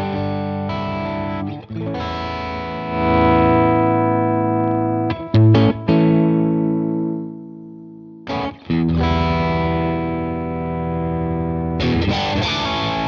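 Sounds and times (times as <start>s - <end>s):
distorted electric guitar chords: 0.0s - 13.0s.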